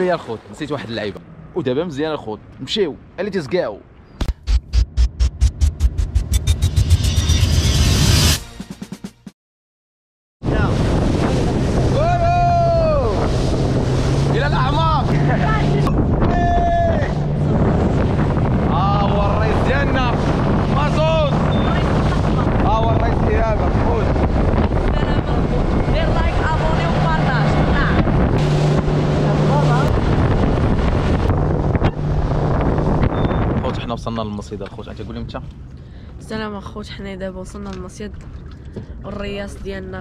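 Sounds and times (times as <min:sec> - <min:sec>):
water rushing from hull: 0:00.0 - 0:01.3, 0:10.4 - 0:34.4, 0:37.0 - 0:40.0
wind on microphone: 0:10.4 - 0:34.0
outboard motor humming: 0:10.5 - 0:33.6.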